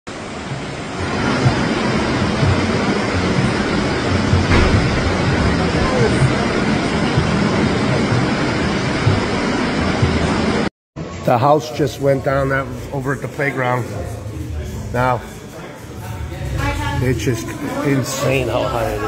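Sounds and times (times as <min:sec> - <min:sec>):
floodwater rushing: 0:00.1 - 0:10.7.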